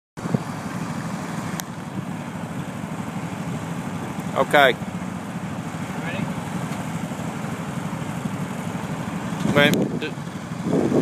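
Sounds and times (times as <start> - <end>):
vehicle engine idling: 0.2 - 11.0.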